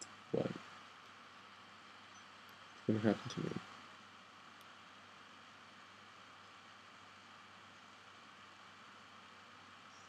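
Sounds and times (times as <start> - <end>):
faint low hum: 0.0 - 10.0
microphone hiss: 0.0 - 10.0.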